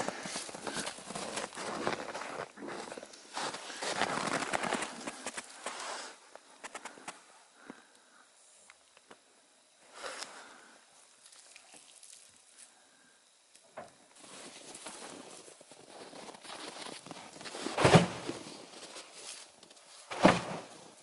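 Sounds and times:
boots crunching in snow: 0.0s - 6.1s
loud heavy thump: 17.8s - 18.3s, 20.1s - 20.7s.

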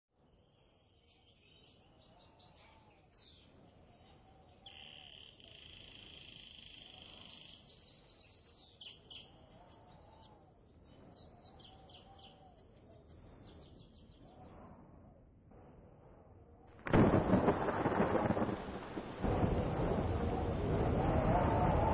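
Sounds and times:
birds chirping and trilling: 0.4s - 14.9s.

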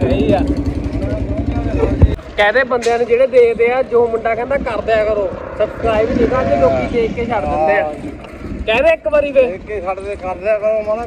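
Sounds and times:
wind rumble on microphone: 4.0s - 11.0s.

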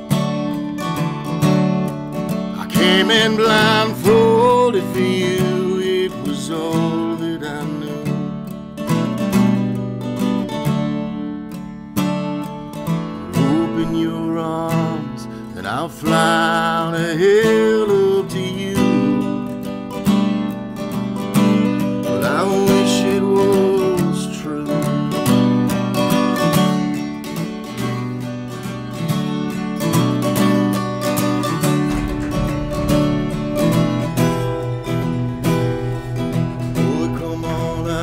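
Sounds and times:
acoustic guitar strumming: 0.0s - 38.0s.

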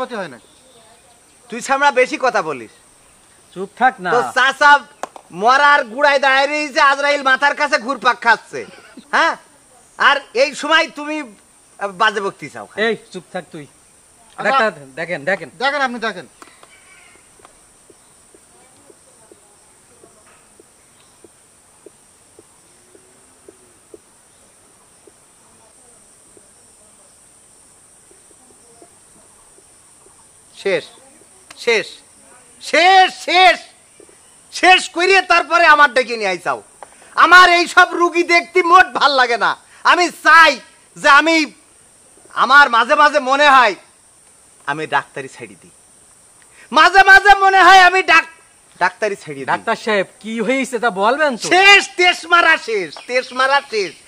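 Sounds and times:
man talking: 0.0s - 0.4s, 1.5s - 2.8s, 3.5s - 9.4s, 10.0s - 13.7s, 14.4s - 16.4s, 30.5s - 30.9s, 31.6s - 32.0s, 32.6s - 33.8s, 34.5s - 41.6s, 42.3s - 43.9s, 46.7s - 54.0s.

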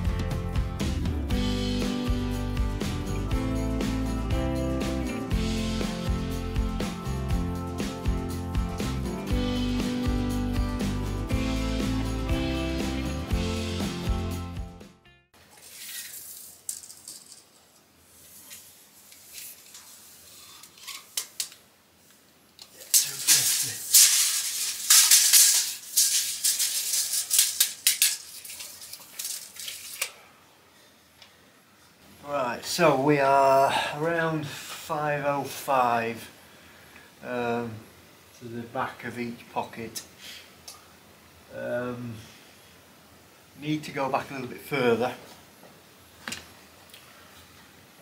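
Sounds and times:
background music: 0.0s - 15.3s
stones scraped and rattled by hand: 22.9s - 30.0s.

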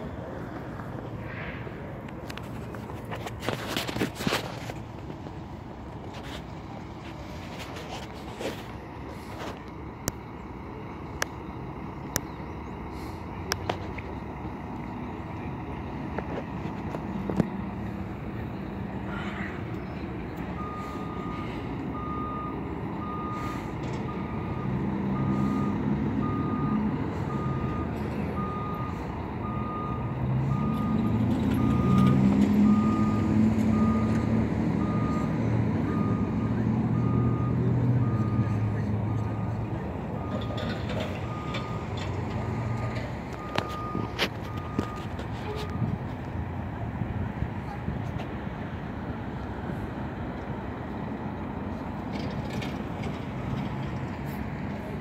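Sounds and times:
bus engine running: 0.0s - 55.0s
reversing alarm beeping: 20.5s - 45.9s.

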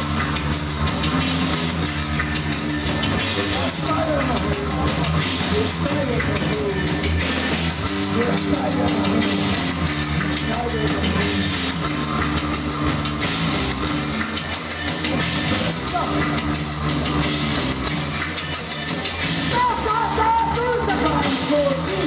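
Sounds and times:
drum kit: 0.0s - 22.0s
electric bass: 0.0s - 22.0s.

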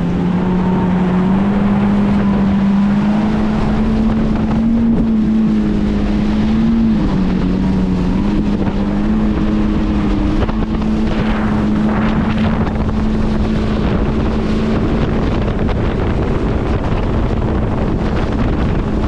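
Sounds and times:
jet ski engine droning: 0.0s - 19.0s.

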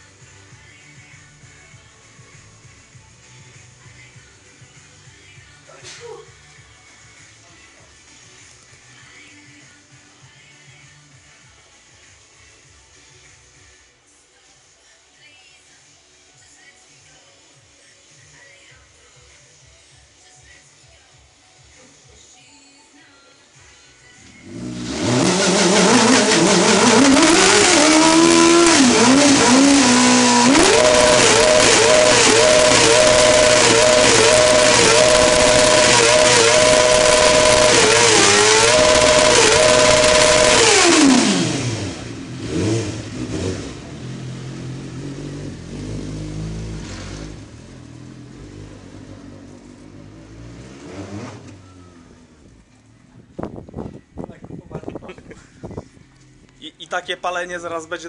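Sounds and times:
motorcycle engine revving hard: 24.3s - 52.4s
rear tyre spinning on pavement: 24.4s - 54.0s.

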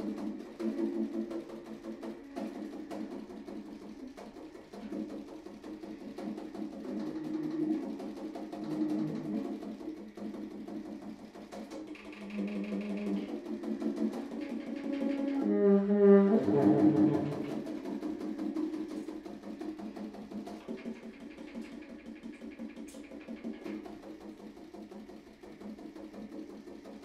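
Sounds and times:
baritone saxophone playing: 15.0s - 17.5s.

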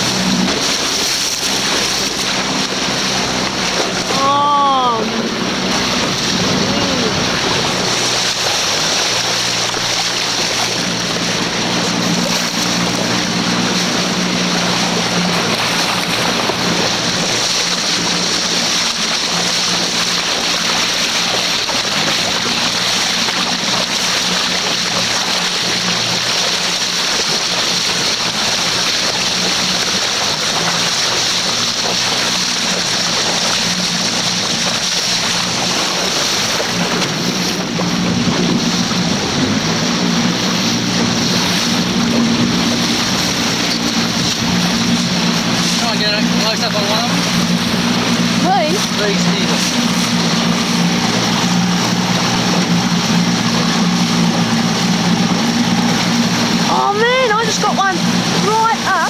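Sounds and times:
motorboat engine running: 0.0s - 59.0s
water rushing: 0.0s - 59.0s
wind: 0.0s - 59.0s.

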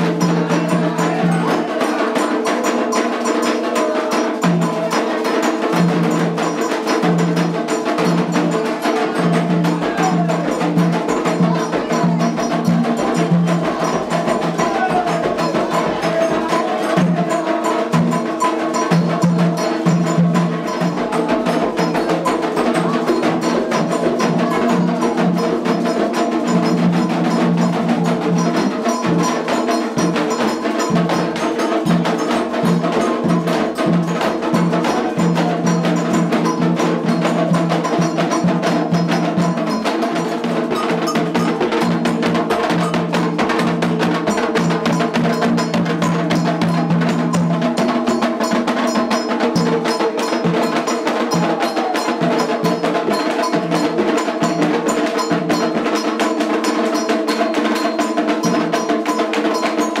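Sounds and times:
metal bells struck rhythmically: 0.0s - 60.0s
percussion: 0.0s - 60.0s.

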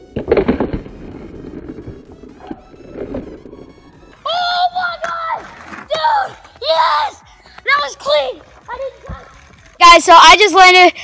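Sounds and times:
skateboard wheels rolling on asphalt: 0.0s - 10.6s
loud excited shouting: 4.2s - 9.1s
skateboard clacking on asphalt: 4.3s - 10.1s.

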